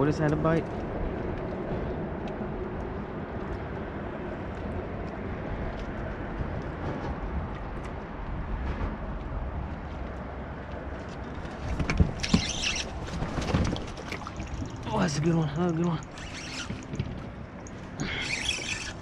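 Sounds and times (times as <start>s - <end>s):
traffic rumble overhead: 0.0s - 19.0s.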